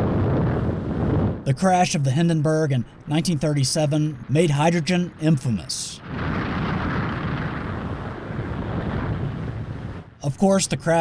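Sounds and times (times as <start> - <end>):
large fire roaring: 0.0 - 11.0.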